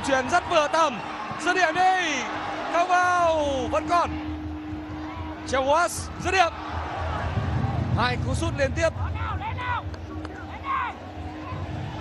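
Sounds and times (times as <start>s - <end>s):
stadium ambience hum: 0.0s - 12.0s.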